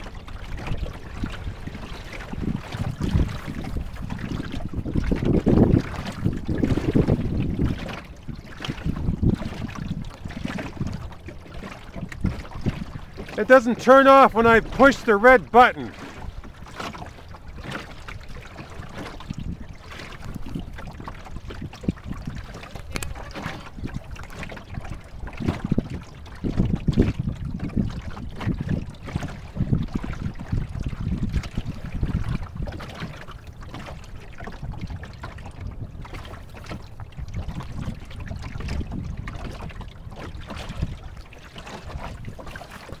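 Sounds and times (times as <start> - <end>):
water washing along hull: 0.0 - 43.0
wind on microphone: 0.0 - 43.0.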